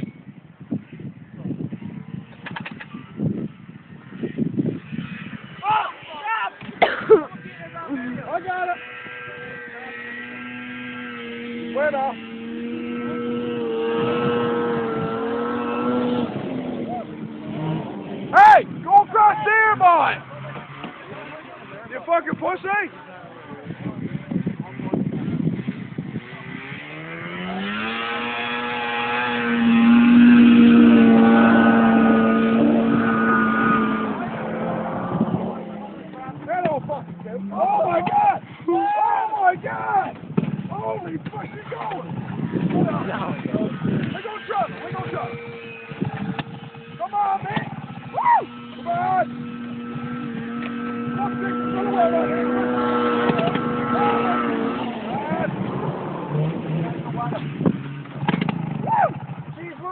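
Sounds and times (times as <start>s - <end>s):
distant snowmobile engine: 0.8s - 59.9s.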